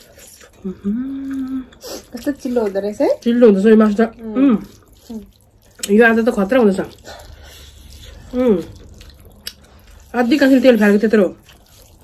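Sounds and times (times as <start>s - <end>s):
soft eating sounds: 0.0s - 12.0s
woman speaking: 1.6s - 7.0s, 10.1s - 11.4s.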